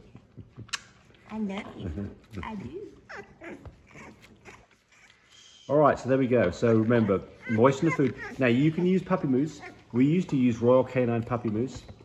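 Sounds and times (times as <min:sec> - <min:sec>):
puppies whimpering: 0:02.8 - 0:05.6, 0:06.2 - 0:10.8.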